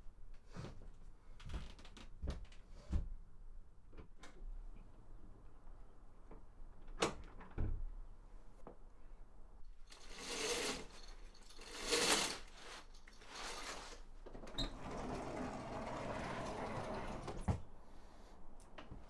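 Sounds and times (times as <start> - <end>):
sliding glass door rolling: 10.0 - 10.9, 11.5 - 17.6.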